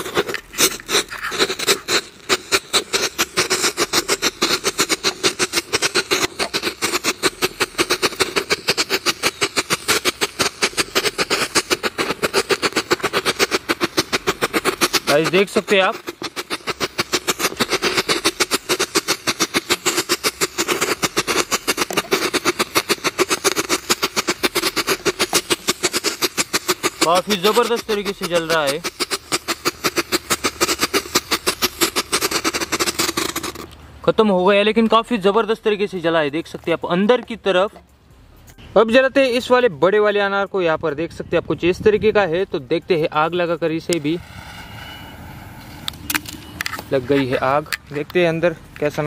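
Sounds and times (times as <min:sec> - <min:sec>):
firecracker rapid sharp pops: 0:00.0 - 0:33.8, 0:45.4 - 0:49.0
torch lighter hissing: 0:00.0 - 0:33.8, 0:43.9 - 0:47.8
sharp clicks and taps: 0:00.0 - 0:33.9.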